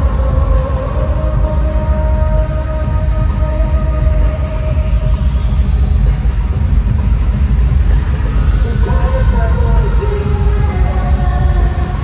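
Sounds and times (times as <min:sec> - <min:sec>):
loud pop concert music: 0:00.0 - 0:12.0.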